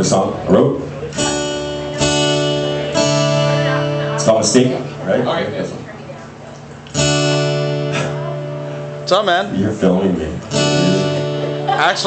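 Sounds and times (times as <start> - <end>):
acoustic guitar chords strummed: 0.0 - 5.3, 6.9 - 12.0.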